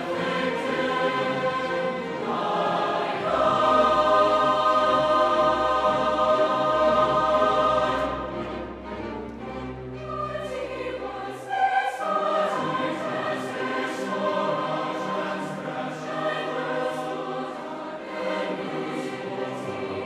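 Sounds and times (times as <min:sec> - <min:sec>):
choir singing sustained chords: 0:00.0 - 0:20.0
string orchestra: 0:00.0 - 0:20.0.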